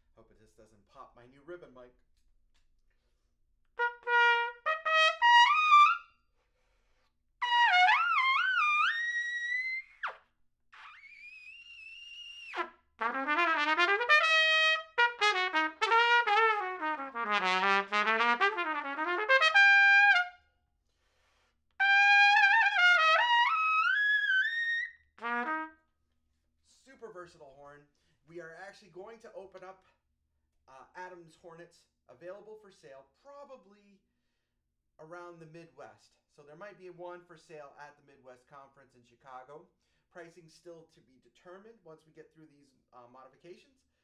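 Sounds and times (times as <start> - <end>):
trumpet playing high phrases: 3.8 - 6.0, 7.4 - 10.2, 10.8 - 20.4, 21.8 - 25.7.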